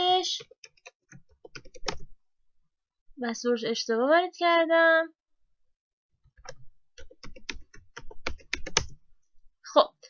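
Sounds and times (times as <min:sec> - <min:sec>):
computer keyboard typing: 0:00.3 - 0:02.1, 0:06.4 - 0:09.0.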